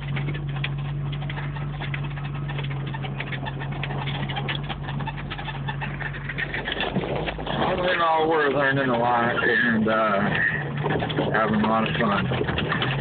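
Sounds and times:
car engine drone: 0:00.0 - 0:13.0
squeaks and rattles: 0:00.0 - 0:13.0.

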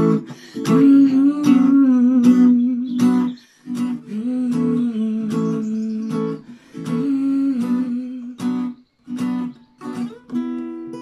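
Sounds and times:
woman humming: 0:00.0 - 0:03.4, 0:06.9 - 0:08.6
acoustic guitar strums: 0:00.0 - 0:11.0.

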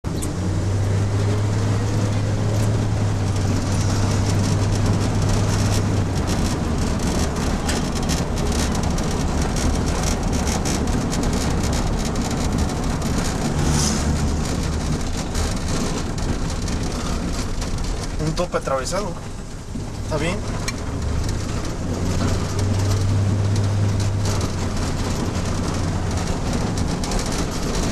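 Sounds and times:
car engine and road noise: 0:00.0 - 0:27.9
rattles and knocks in car: 0:00.1 - 0:27.9.

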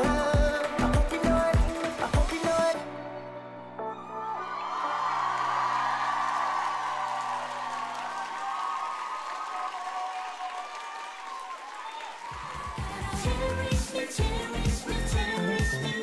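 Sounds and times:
dance song: 0:00.0 - 0:03.0, 0:12.5 - 0:16.0
audience cheering and applauding: 0:04.4 - 0:15.7.

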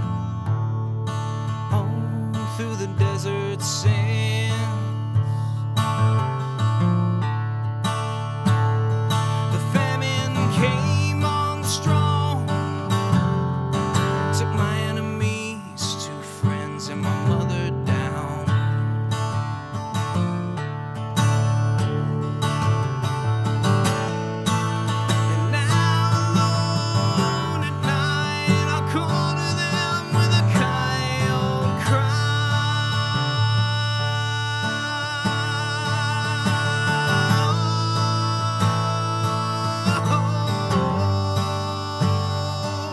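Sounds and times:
acoustic guitar strumming: 0:00.0 - 0:42.9.

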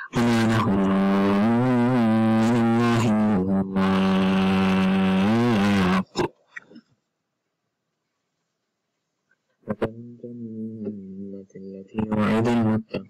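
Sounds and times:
person chanting melodically: 0:00.0 - 0:06.3, 0:09.7 - 0:13.0.

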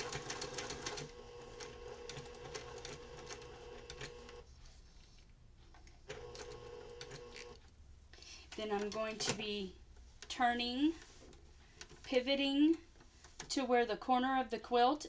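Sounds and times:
sewing machine motor humming: 0:00.0 - 0:04.4, 0:06.1 - 0:07.6.

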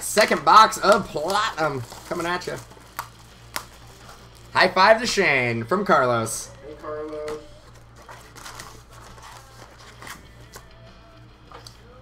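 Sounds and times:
quiet background music: 0:00.0 - 0:12.0
foil packs crinkling: 0:00.1 - 0:05.0, 0:06.6 - 0:10.7.

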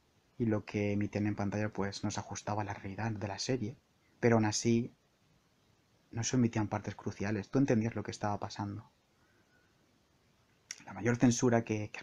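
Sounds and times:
man speaking: 0:00.4 - 0:05.0, 0:06.1 - 0:08.9, 0:10.7 - 0:12.0
mouth click: 0:10.6 - 0:10.9.

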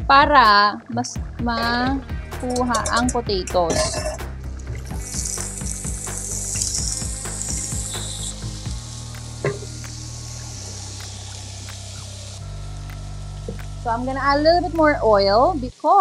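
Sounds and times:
potatoes sizzling in hot oil: 0:02.4 - 0:16.0.

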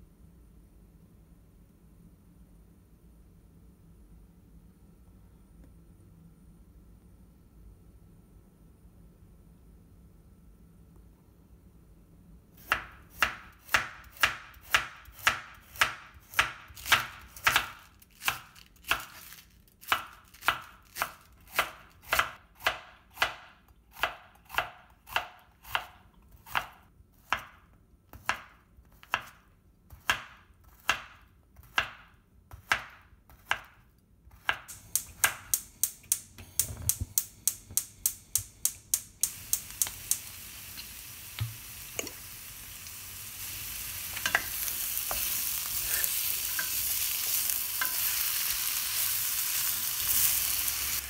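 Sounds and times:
steady hiss: 0:34.7 - 0:51.0.

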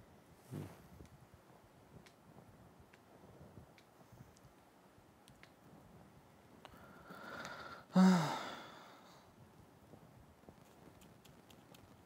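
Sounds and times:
person sighing: 0:07.1 - 0:09.2.

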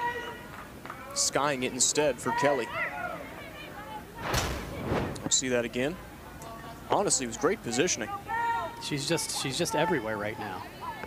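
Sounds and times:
faint field ambience: 0:00.6 - 0:11.0
transition whoosh: 0:04.2 - 0:05.6.

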